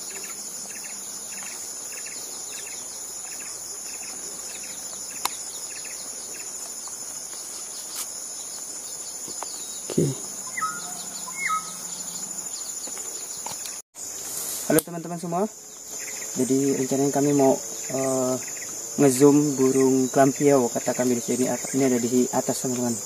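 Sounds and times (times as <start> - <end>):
insects droning: 0.0 - 23.0
bird low call: 9.5 - 13.8
bird whistled notes: 10.4 - 12.3.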